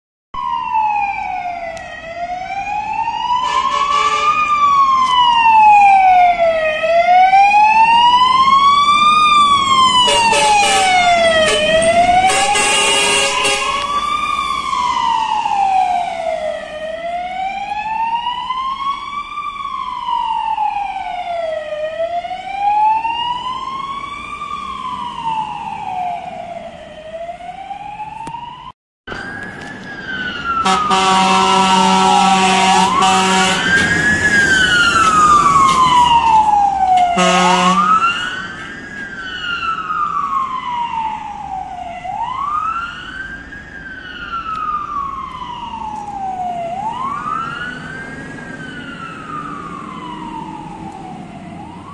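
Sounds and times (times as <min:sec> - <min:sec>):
fire engine siren wailing: 0:00.4 - 0:51.9
truck horn blasts: 0:03.4 - 0:04.4, 0:10.0 - 0:14.0, 0:30.6 - 0:33.7, 0:37.2 - 0:38.0.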